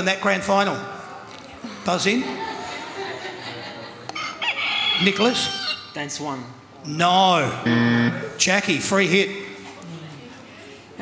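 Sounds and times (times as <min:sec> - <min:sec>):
buzzer noisemaker squawk: 0:07.7 - 0:08.2.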